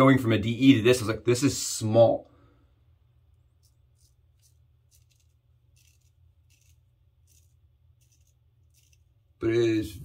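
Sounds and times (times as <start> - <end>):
razor scraping stubble: 3.5 - 9.5.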